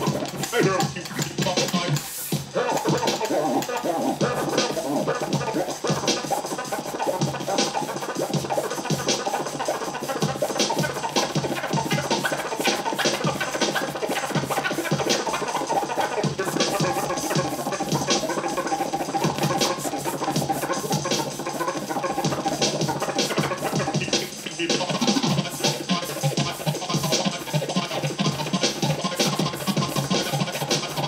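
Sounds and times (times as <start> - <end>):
steady beat: 0.0 - 31.0
turntable scratching: 0.0 - 31.0.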